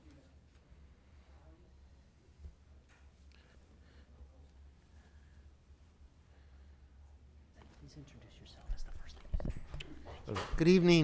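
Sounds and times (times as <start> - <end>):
steady low hum: 0.0 - 11.0
faint whispered voices: 7.5 - 10.5.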